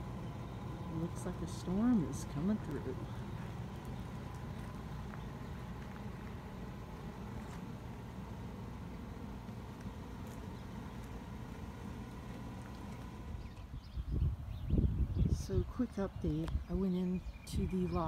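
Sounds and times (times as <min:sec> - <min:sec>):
wind blowing on microphone: 0:13.4 - 0:18.0.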